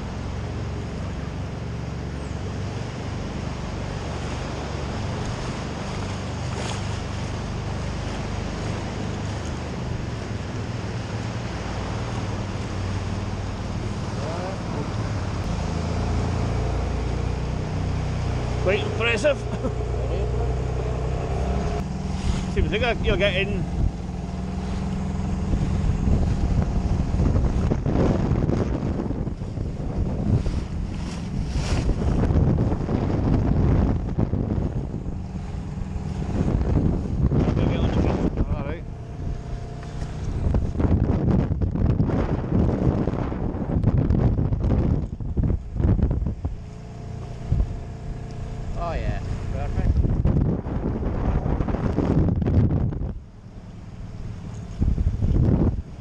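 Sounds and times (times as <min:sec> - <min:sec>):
outboard motor running: 0:00.0 - 0:56.0
water slapping hull: 0:00.0 - 0:56.0
wind buffeting microphone: 0:00.0 - 0:56.0.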